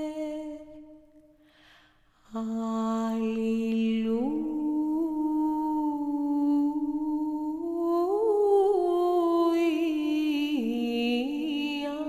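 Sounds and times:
woman singing a wordless chant: 0.0 - 1.0, 2.2 - 12.0.

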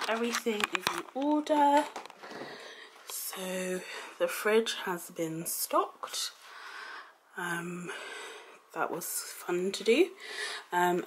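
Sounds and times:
woman speaking: 0.0 - 2.0, 3.1 - 6.4, 7.4 - 8.0, 8.7 - 11.0.

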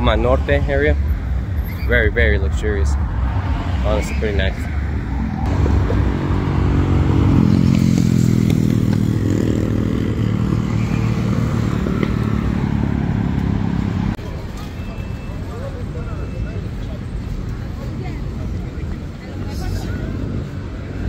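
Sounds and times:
street traffic noise: 0.0 - 21.0.

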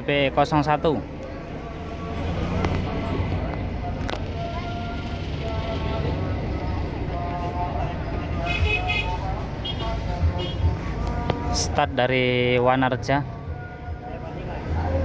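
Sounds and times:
background voices: 0.0 - 15.0
faint music: 0.0 - 15.0
traffic engine rumble: 0.0 - 15.0.

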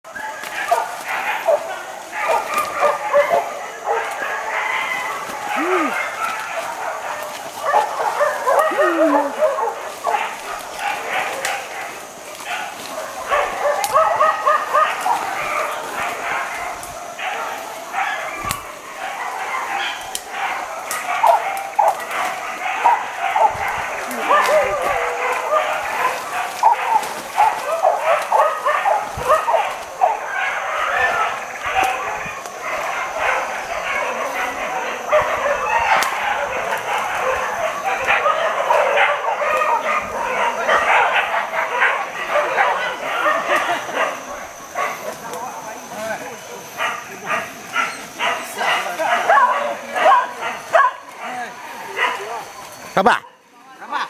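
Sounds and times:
dogs yipping and barking: 0.0 - 54.0.

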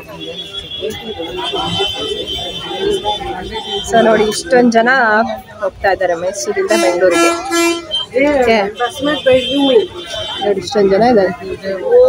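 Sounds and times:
vehicle horn blast: 0.0 - 4.4, 6.7 - 8.1
people talking: 0.0 - 12.0.

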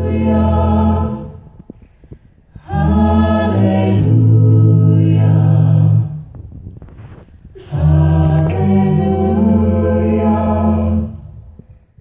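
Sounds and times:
a cappella group singing chords: 0.0 - 6.4, 7.5 - 12.0.

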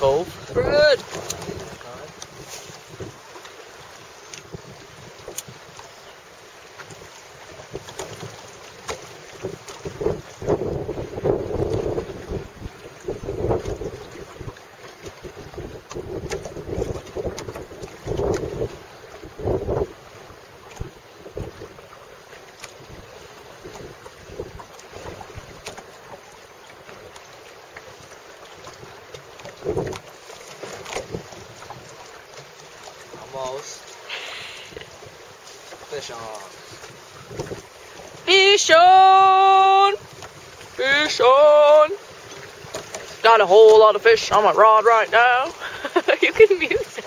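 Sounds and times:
wind buffeting microphone: 0.0 - 5.9, 6.8 - 22.0, 22.8 - 25.8, 28.6 - 32.0, 35.9 - 43.2
choppy water: 0.0 - 47.0.

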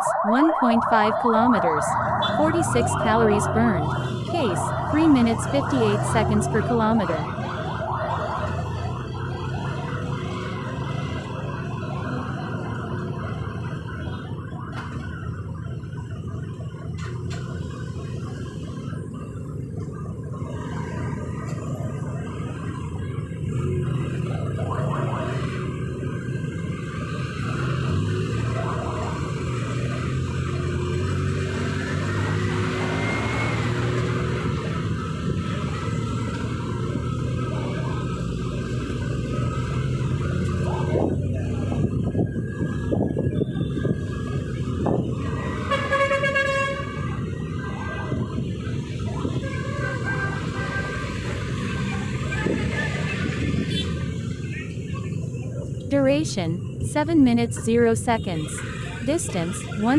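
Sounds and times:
moving vehicle hum: 0.0 - 59.9
traffic noise: 0.0 - 59.9.

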